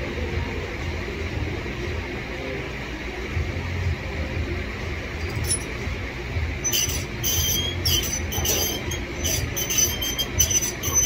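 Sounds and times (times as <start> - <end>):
steady low hum: 0.0 - 11.0
cable and pulleys squeaking: 5.2 - 5.8, 6.6 - 11.0.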